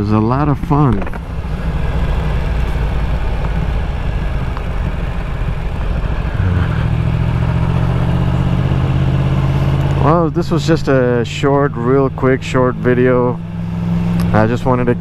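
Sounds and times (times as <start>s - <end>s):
motorcycle engine running: 0.4s - 15.0s.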